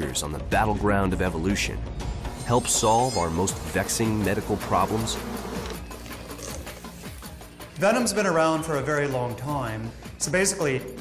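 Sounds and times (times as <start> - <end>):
insects buzzing in flight: 3.5 - 7.2.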